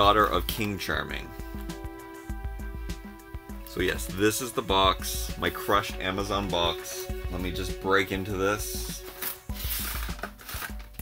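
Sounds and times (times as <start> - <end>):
background music: 0.0 - 11.0
cardboard box ripping: 9.0 - 11.0.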